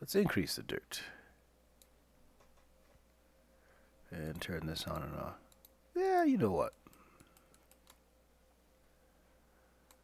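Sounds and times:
faint computer clicks: 4.2s - 5.8s, 6.6s - 8.0s.

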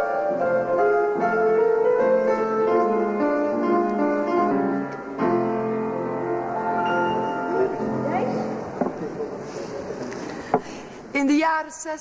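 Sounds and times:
piano music: 0.0s - 10.0s
low voices: 7.3s - 10.9s.

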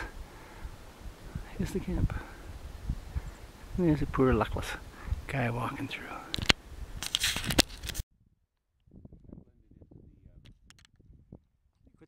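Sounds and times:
camera handling clicks: 6.3s - 8.0s
camera handling rustling: 6.3s - 8.0s.

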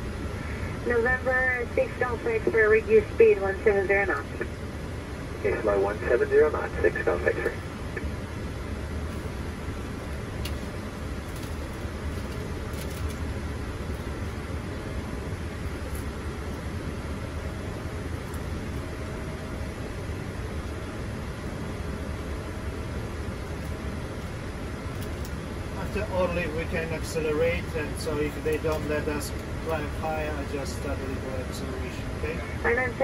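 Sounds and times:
rush of airflow and air conditioning: 0.0s - 33.0s.

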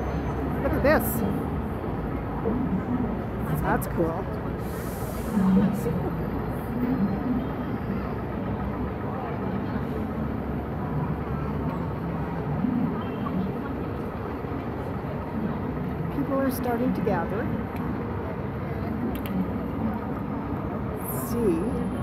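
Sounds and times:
faint chatter of passers-by: 0.0s - 22.0s
low traffic rumble: 0.0s - 22.0s.

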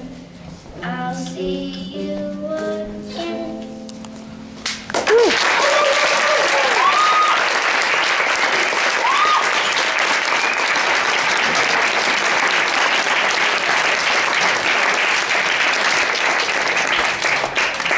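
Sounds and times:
audience applauding: 4.9s - 17.9s
whoops: 5.0s - 7.6s, 8.9s - 9.8s.

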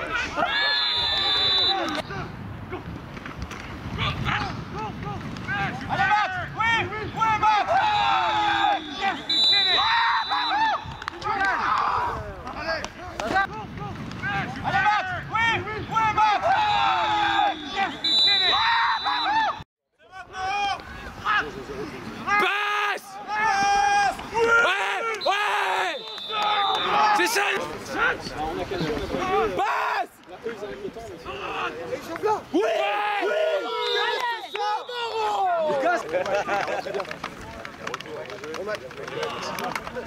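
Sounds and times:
high whistle blasts: 0.6s - 2.0s, 8.5s - 11.0s, 17.4s - 19.6s, 25.2s - 27.0s, 33.7s - 35.4s
voices shouting: 4.0s - 19.6s, 22.2s - 30.2s, 31.2s - 36.4s.

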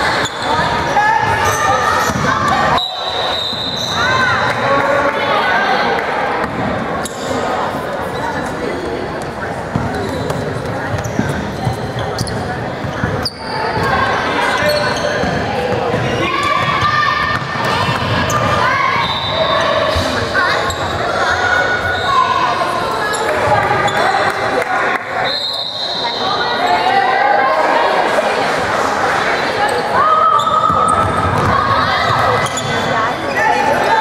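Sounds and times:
voices calling out echoing: 0.0s - 34.0s.

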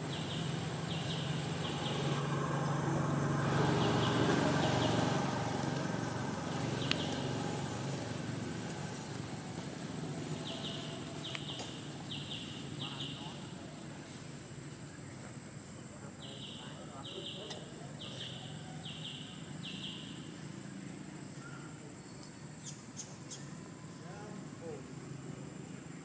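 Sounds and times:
low motor hum: 0.0s - 13.6s.

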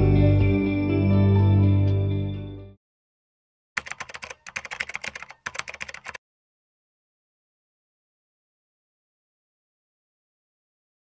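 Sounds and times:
keyboard typing: 3.8s - 6.2s.

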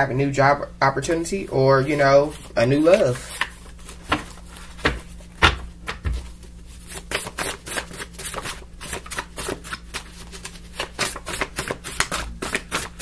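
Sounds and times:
cards being shuffled: 1.8s - 13.0s.

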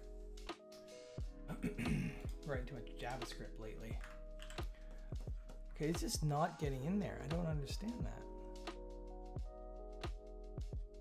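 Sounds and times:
lo-fi background music: 0.0s - 11.0s
keyboard keys clicking: 2.1s - 6.3s.

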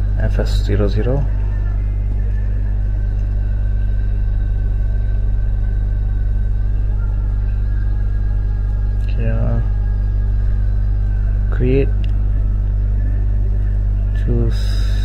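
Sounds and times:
electrical mains hum: 0.0s - 15.0s.

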